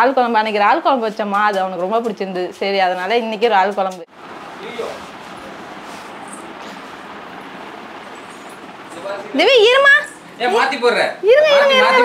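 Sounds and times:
steady background hiss: 0:02.5 - 0:12.0.

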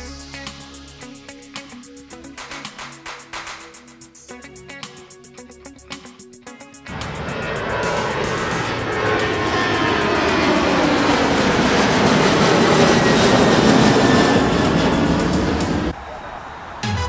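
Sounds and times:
background music with beat: 0:00.0 - 0:11.5
jet engine climbing: 0:00.4 - 0:04.2, 0:06.6 - 0:17.0
jet whine: 0:06.5 - 0:16.9.

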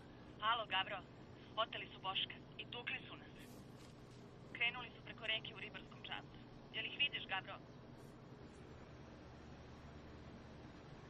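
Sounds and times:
faint low hum: 0:00.0 - 0:11.0
person speaking over telephone: 0:00.4 - 0:01.0, 0:01.6 - 0:03.4, 0:04.6 - 0:07.6.

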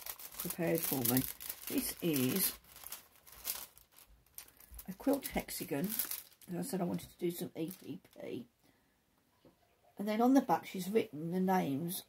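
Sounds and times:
paper packaging crinkling: 0:00.0 - 0:08.3.

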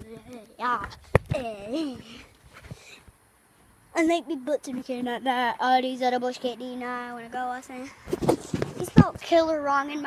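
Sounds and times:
boy speaking in sing-song voice: 0:00.0 - 0:02.3, 0:08.8 - 0:10.0.

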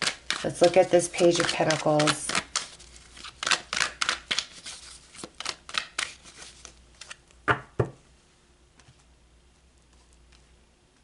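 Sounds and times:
cards shuffling: 0:00.0 - 0:07.2
cards tapping on table: 0:07.5 - 0:08.0.

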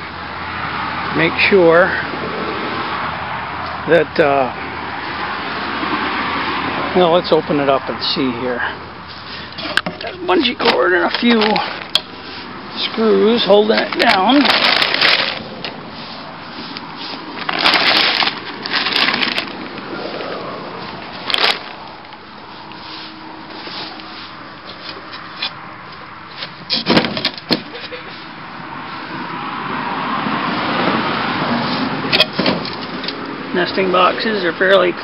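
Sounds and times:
plastic tarp rustling: 0:13.6 - 0:15.6, 0:17.3 - 0:20.4, 0:21.0 - 0:22.1.

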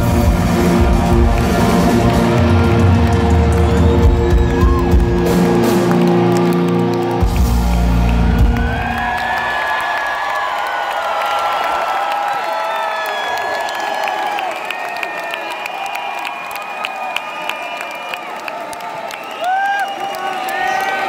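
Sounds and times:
crowd cheering: 0:00.0 - 0:21.0.

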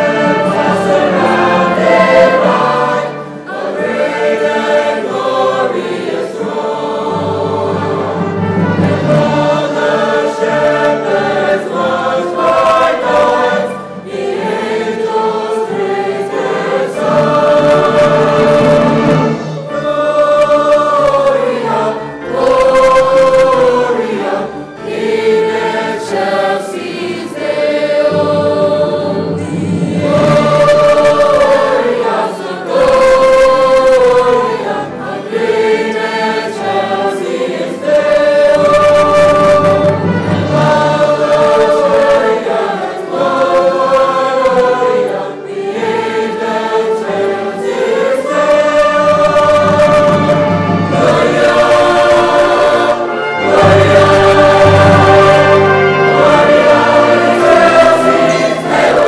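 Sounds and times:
choir singing: 0:00.0 - 0:59.0
orchestra playing: 0:00.0 - 0:59.0.

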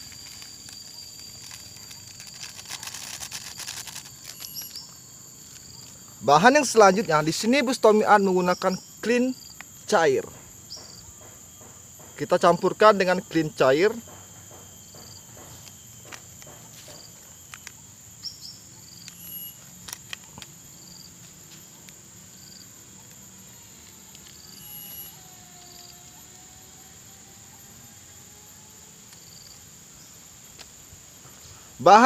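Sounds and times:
plastic sachet crinkling and tearing: 0:00.0 - 0:04.7
insects droning: 0:00.0 - 0:32.0.

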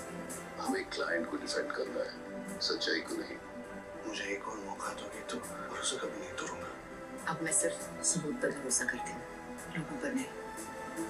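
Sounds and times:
low sustained background music: 0:00.0 - 0:11.0
man speaking dialogue: 0:00.6 - 0:06.8.

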